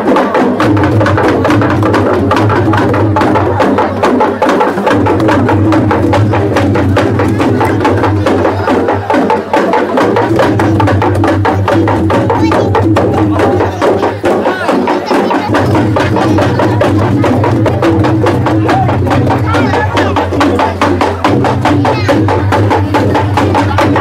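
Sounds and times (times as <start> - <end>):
wooden barrel drums beaten by hand: 0.0 - 24.0.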